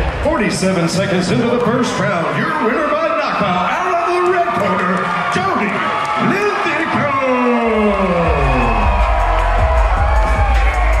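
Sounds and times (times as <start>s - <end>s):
crowd cheering: 0.0s - 11.0s
loud music with heavy bass: 7.8s - 11.0s.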